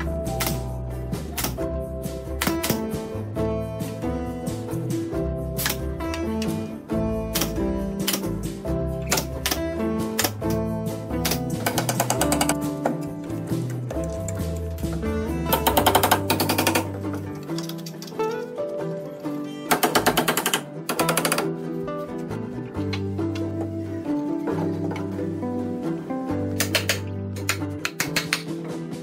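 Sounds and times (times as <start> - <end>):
background music: 0.0 - 29.0
nail gun shots: 2.4 - 2.9, 7.3 - 8.4, 19.7 - 21.5.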